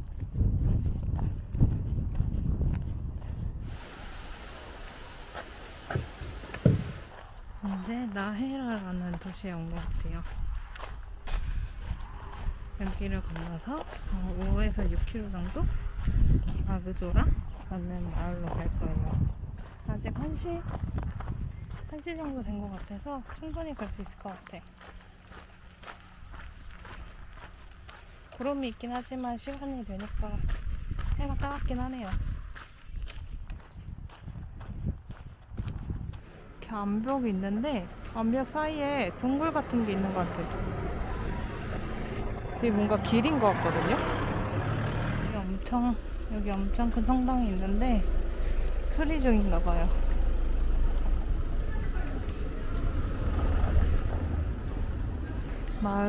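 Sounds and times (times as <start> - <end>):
wind rumbling on microphone: 0.0 - 24.2, 29.4 - 56.0
steady outdoor hiss: 3.6 - 7.3
footsteps crunching on dirt: 5.2 - 39.0
low rumble: 34.4 - 56.0.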